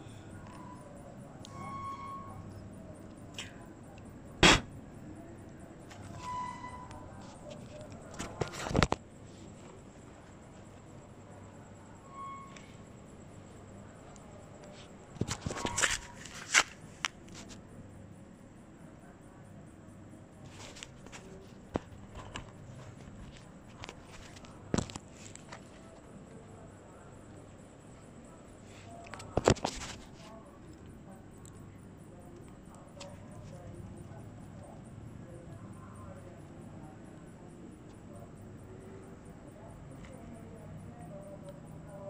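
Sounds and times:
faint squeaks: 0:00.0 - 0:17.6.

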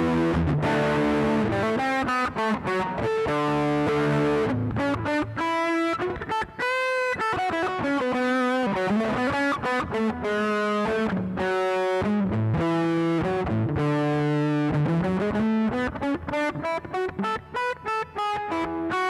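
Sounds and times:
overdriven electric guitar: 0:00.0 - 0:19.0.

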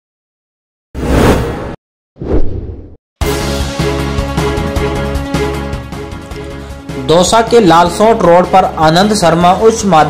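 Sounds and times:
whoosh transition effect: 0:01.0 - 0:03.0.

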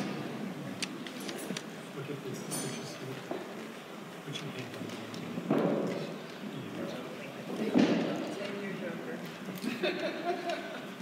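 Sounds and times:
banquet hall murmur: 0:00.0 - 0:11.0.

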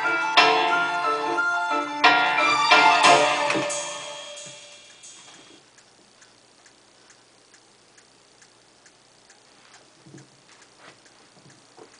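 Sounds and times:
music: 0:00.0 - 0:05.2.

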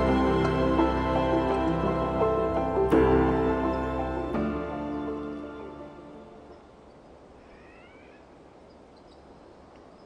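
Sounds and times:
outdoor background noise: 0:00.0 - 0:10.0
faint rising animal call: 0:07.3 - 0:08.4.

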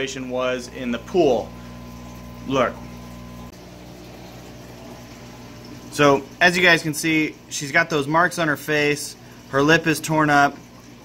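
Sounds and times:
steady low hum: 0:00.0 - 0:07.5.

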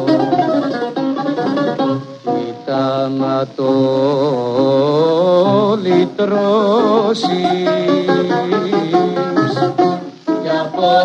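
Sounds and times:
person singing with vibrato: 0:00.0 - 0:00.9, 0:01.8 - 0:11.0
bouzouki and guitar: 0:00.0 - 0:11.0.

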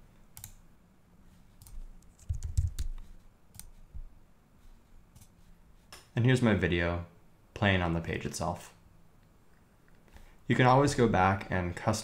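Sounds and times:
keyboard keystrokes: 0:01.6 - 0:03.7.

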